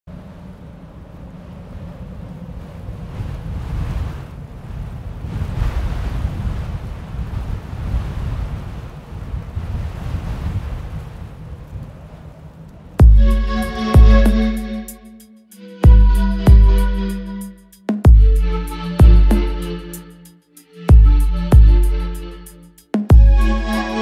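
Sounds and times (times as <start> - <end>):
wind blowing across microphone: 0.1 - 13.0.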